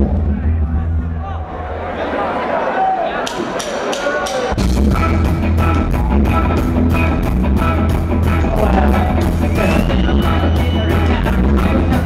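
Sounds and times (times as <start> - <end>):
crowd voices: 0.0 - 12.0
band playing bass and drums: 4.2 - 12.0.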